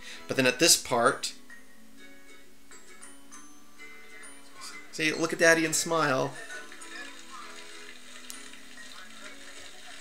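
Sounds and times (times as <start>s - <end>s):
quiet background music: 0.0s - 10.0s
fire hose spraying water: 6.9s - 10.0s.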